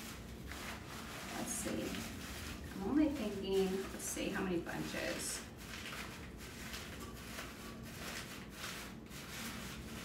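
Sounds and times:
artificial flowers rustling: 0:00.0 - 0:10.0.

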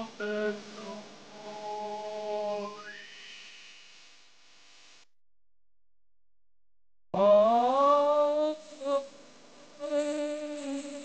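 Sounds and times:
man humming a low note: 0:00.0 - 0:02.8, 0:07.2 - 0:09.2, 0:09.8 - 0:11.0.

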